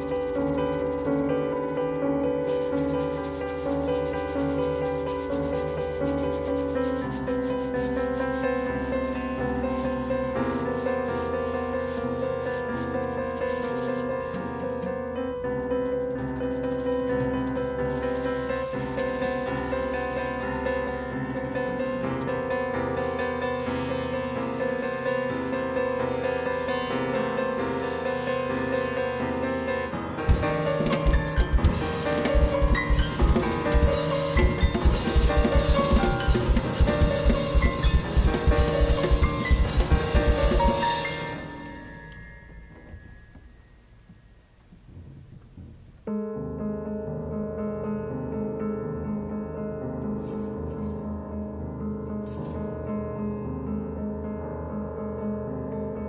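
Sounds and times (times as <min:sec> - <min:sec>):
drumstick scraping snare drum: 0:00.0 - 0:15.1, 0:15.7 - 0:41.7
bass drum thumps: 0:30.3 - 0:40.8
hand drum strokes: 0:30.3 - 0:41.7.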